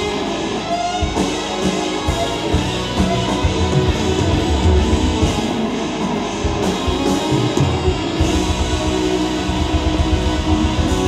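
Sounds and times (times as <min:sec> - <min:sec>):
live guitar band music: 0:00.0 - 0:11.0.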